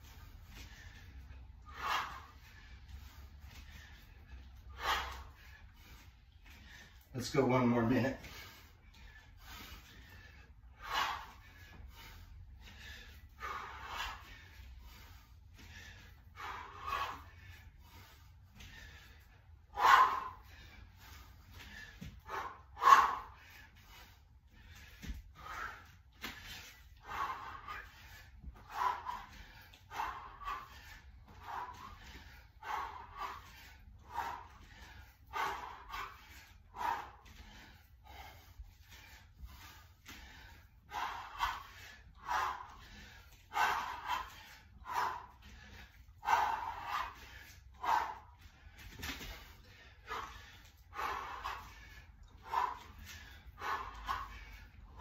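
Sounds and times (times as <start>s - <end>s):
man breathing hard: 0.0s - 55.0s.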